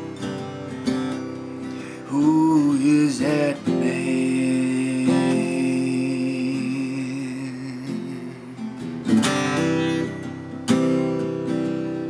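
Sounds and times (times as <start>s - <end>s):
acoustic guitar: 0.0s - 12.0s
man singing wordless notes: 1.8s - 9.0s.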